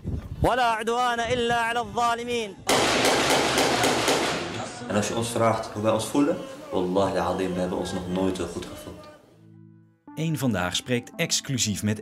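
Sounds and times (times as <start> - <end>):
automatic gunfire: 2.7 - 4.7
man declaiming: 3.7 - 9.3.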